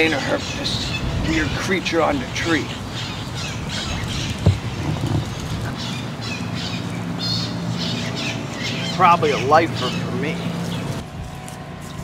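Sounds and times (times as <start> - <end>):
birds squawking: 0.0 - 11.0.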